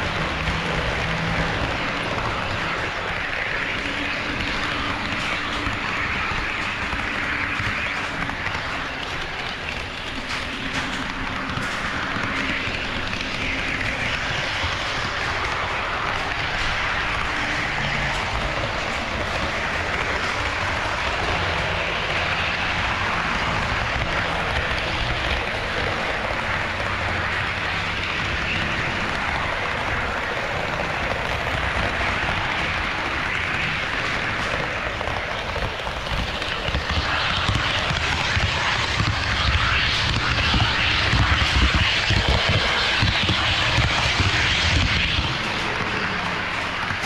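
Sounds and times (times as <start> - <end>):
model train running on rails: 0.0 - 47.0.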